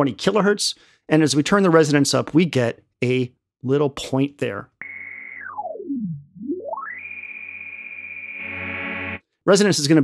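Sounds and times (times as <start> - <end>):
pulsing low synth note filter sweep: 4.8 - 9.1.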